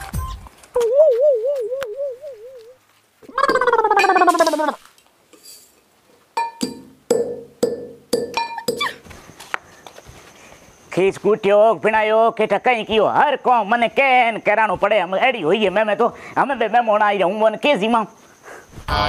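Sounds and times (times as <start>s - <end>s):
wobbling comic sound effect: 3.2s - 4.8s
metal pestle striking steel mortar: 6.4s - 9.0s.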